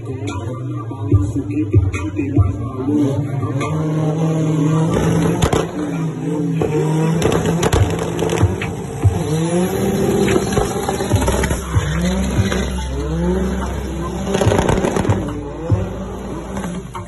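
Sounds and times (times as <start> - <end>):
car engine revving hard: 2.8 - 17.0.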